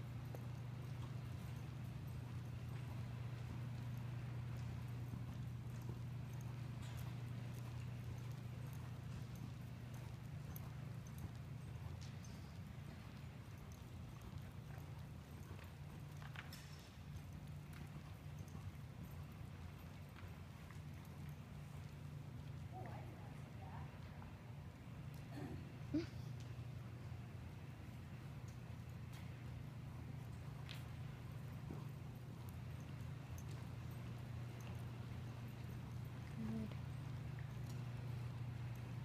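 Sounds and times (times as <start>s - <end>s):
horse trotting on soft dirt: 0.0s - 39.0s
steady low hum: 0.0s - 39.0s.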